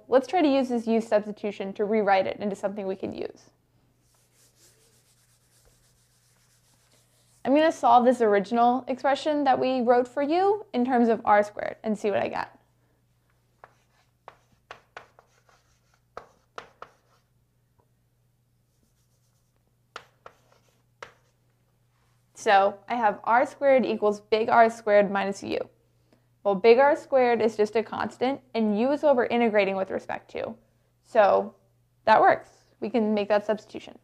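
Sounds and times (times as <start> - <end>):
eraser rubbing on blackboard: 4.0 - 7.6, 13.6 - 17.3, 18.7 - 21.4.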